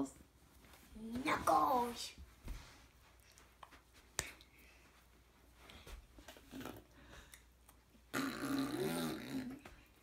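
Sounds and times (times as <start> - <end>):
faint movement noises: 0.0 - 8.1.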